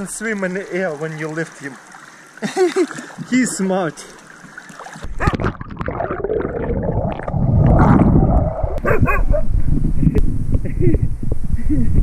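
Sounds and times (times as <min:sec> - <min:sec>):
water churning and splashing: 0:00.0 - 0:08.8.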